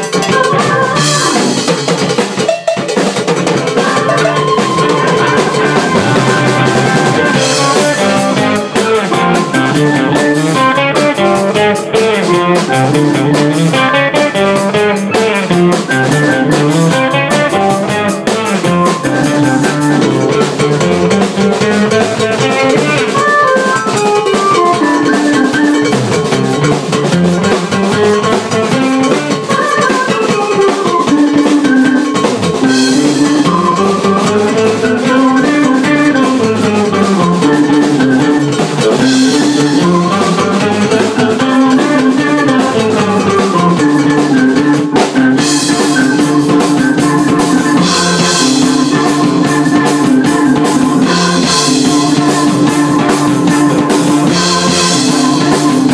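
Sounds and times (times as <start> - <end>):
drum kit: 0.0 - 55.9
electric guitar: 0.0 - 55.9
keyboard: 0.0 - 55.9.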